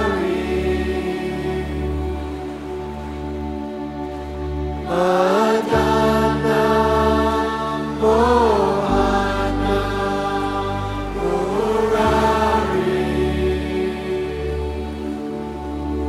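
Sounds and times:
sustained drone: 0.0s - 16.0s.

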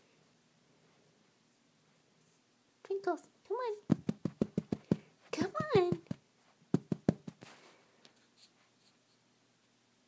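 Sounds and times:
soft rustle: 0.0s - 2.7s, 3.8s - 9.3s.

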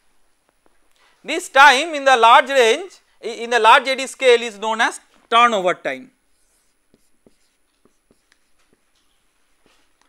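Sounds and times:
marker pen on whiteboard: 5.2s - 10.0s.

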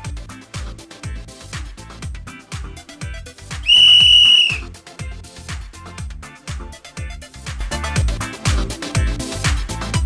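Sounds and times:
high-pitched whistle blast: 3.6s - 4.6s.

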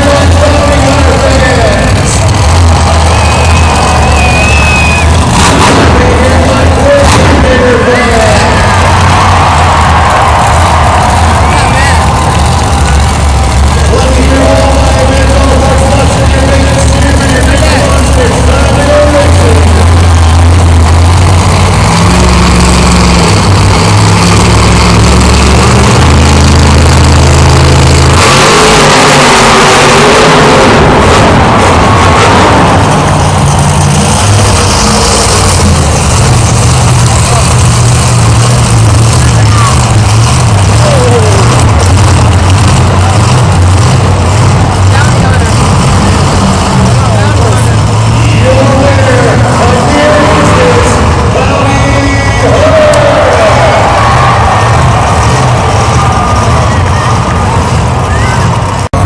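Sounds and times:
monster truck engines revving: 0.0s - 59.0s.

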